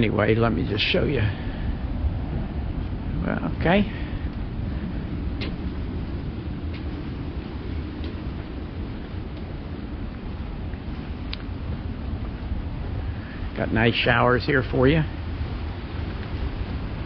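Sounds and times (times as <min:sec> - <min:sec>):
low outdoor rumble: 0:00.0 - 0:17.0.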